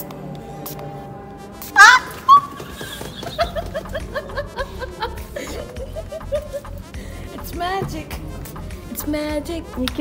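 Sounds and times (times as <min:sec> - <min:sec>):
woman squealing: 0:01.7 - 0:02.9.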